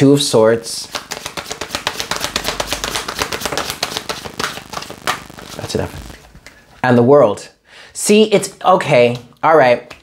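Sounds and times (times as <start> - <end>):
cards being shuffled: 0.8 - 6.3.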